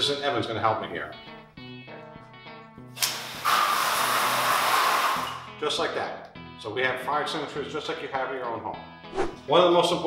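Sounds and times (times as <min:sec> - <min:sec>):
fire extinguisher spraying water: 0:03.0 - 0:05.4.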